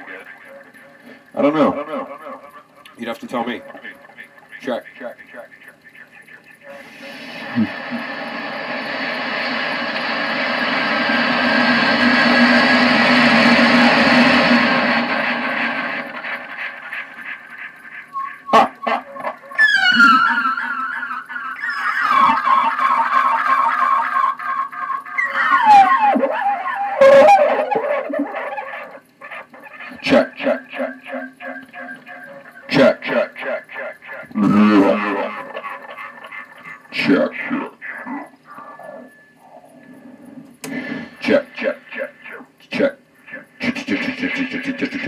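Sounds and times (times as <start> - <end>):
laugh with tape echoes: 0.0 - 39.1
echoing knocks and warbling: 7.8 - 21.5.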